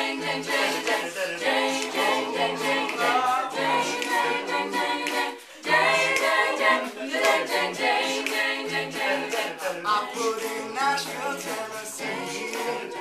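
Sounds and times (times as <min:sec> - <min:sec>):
a cappella group singing: 0:00.0 - 0:13.0.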